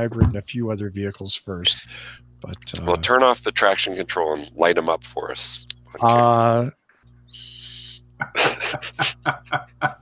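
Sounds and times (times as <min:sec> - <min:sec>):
men laughing: 0:08.2 - 0:10.0.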